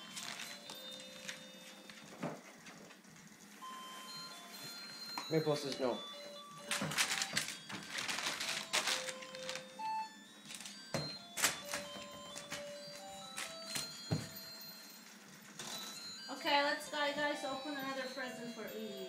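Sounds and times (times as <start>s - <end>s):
wrapping paper crumpling: 0.0s - 2.1s, 6.6s - 9.8s, 10.4s - 13.9s.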